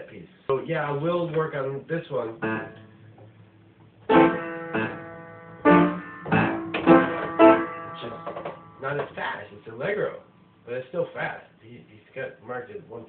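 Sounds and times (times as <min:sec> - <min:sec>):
piano chords and notes: 0:02.4 - 0:03.0, 0:04.0 - 0:09.2.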